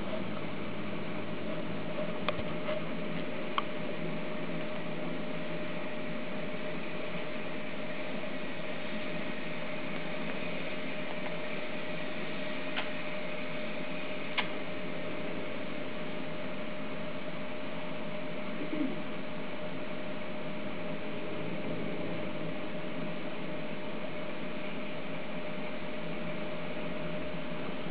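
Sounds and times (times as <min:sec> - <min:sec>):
faint steady hum: 0:00.0 - 0:27.9
steady background hiss: 0:00.0 - 0:27.9.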